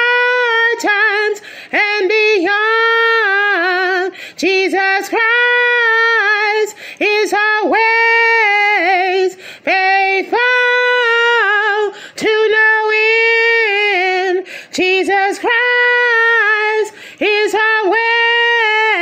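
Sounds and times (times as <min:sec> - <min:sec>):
woman singing unaccompanied: 0:00.0 - 0:19.0.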